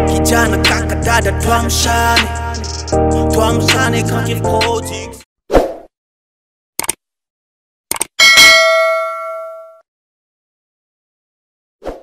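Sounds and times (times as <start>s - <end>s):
mouse-like double clicks: 6.8s - 7.0s, 7.9s - 8.1s
bright bell ding: 8.2s - 9.8s.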